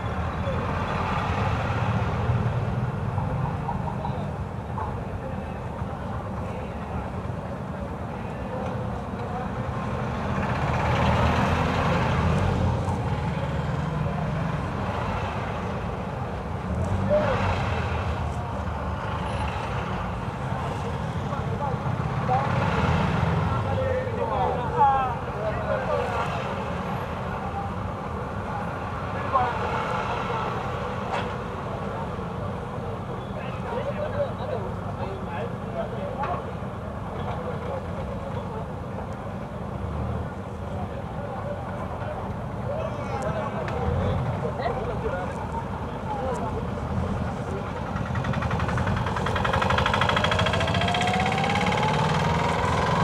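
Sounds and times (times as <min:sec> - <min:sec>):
vehicle engine rumble: 0:00.0 - 0:53.0.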